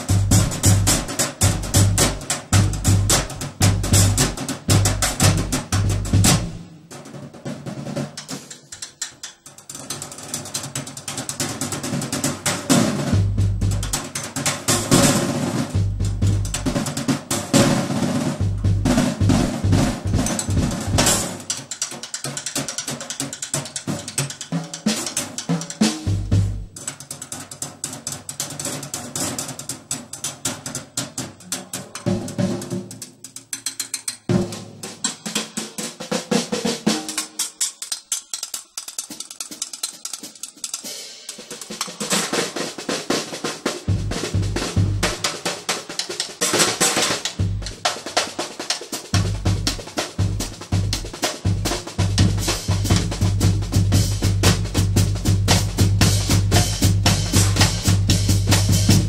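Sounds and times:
snare and tom strokes: 0:00.0 - 0:59.0.

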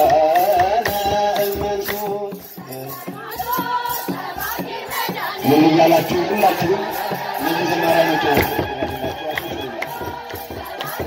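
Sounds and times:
children's choir chanting: 0:00.0 - 0:11.0.

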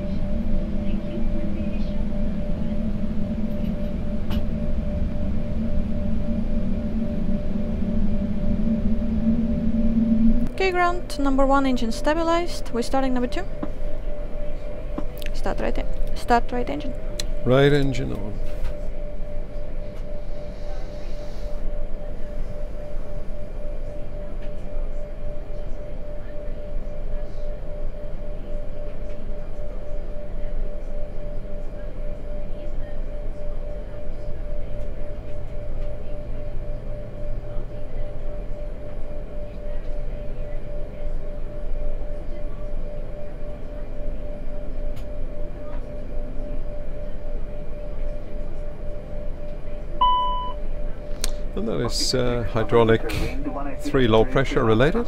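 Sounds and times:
flight deck hum with constant tone: 0:00.0 - 0:55.0.

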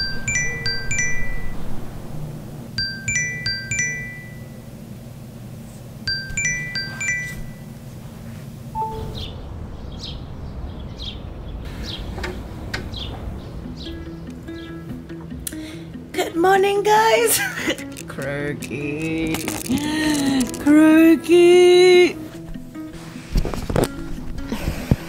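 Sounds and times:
phone alarm chime: 0:00.0 - 0:01.6, 0:02.8 - 0:04.7, 0:06.1 - 0:07.8
low steady hum: 0:00.0 - 0:14.6
rustling and handling of phone: 0:17.7 - 0:20.7, 0:22.3 - 0:24.3.

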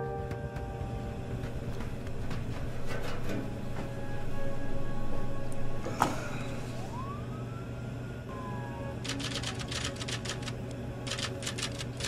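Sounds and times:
steady low drone: 0:00.0 - 0:12.0
siren wail: 0:04.1 - 0:09.1
sharp clicks: 0:09.0 - 0:12.0.

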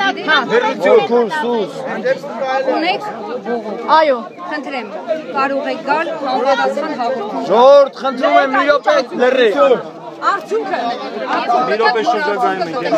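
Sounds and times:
crowd of people talking: 0:00.0 - 0:12.9.

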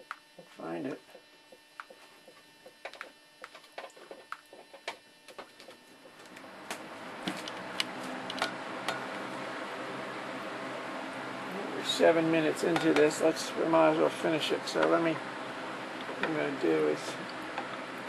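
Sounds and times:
electric fan whirring: 0:00.0 - 0:18.0.

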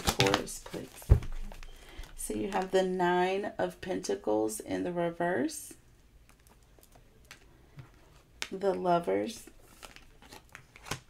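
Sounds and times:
cards clicking and tapping: 0:00.0 - 0:01.7.

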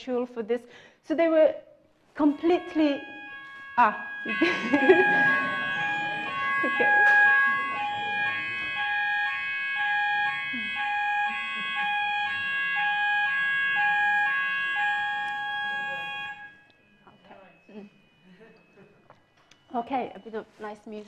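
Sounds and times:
electronic beeping tune: 0:02.2 - 0:18.8
steady high tone: 0:02.2 - 0:20.5.

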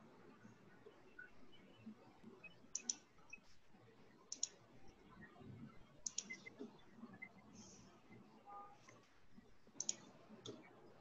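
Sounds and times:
computer mouse clicks: 0:02.7 - 0:03.4, 0:04.3 - 0:04.6, 0:06.0 - 0:06.7, 0:09.8 - 0:10.7.

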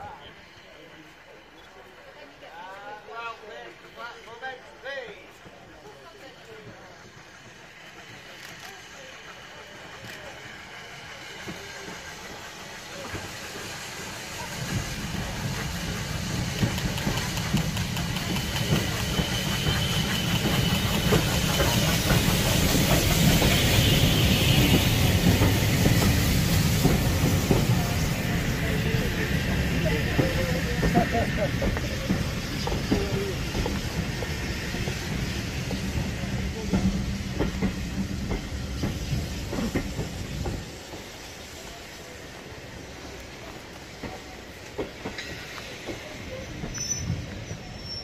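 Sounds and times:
steam locomotive hissing: 0:00.0 - 0:48.0
wheels rumbling on rails: 0:05.3 - 0:48.0.

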